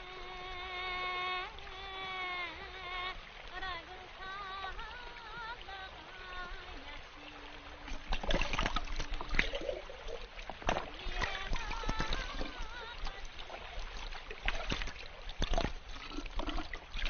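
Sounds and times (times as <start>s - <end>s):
water splashing and trickling: 0.0s - 17.0s.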